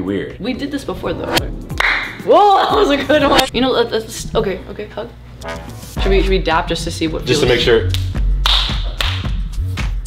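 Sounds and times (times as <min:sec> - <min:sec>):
music with deep bass beat: 0:01.1 - 0:03.5, 0:05.6 - 0:10.0
hands slapping together: 0:07.9 - 0:09.4.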